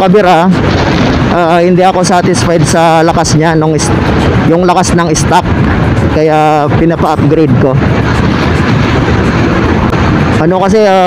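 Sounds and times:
scooter and road noise: 0.0s - 11.0s
wind rushing over microphone: 0.0s - 11.0s.

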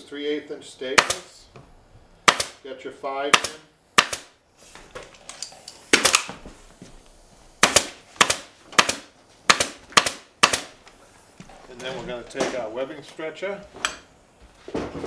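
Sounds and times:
pneumatic staple gun firing: 1.0s - 1.3s, 2.2s - 2.6s, 3.3s - 4.3s, 5.5s - 6.4s, 7.6s - 10.8s.

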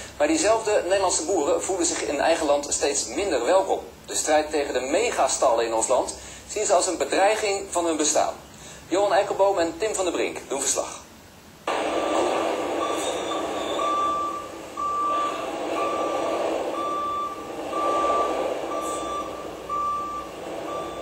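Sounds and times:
reversing alarm beeping: 11.7s - 21.0s
vehicle engine running: 11.7s - 21.0s.

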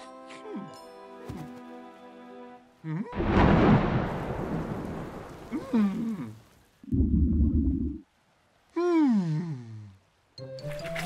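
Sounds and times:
low thunder rumble: 3.2s - 6.2s
cartoon pouring rain: 3.2s - 10.2s.

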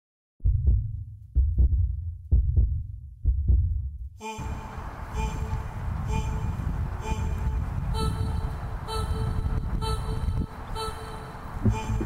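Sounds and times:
heartbeat double beats: 0.4s - 4.2s, 11.6s - 12.0s.

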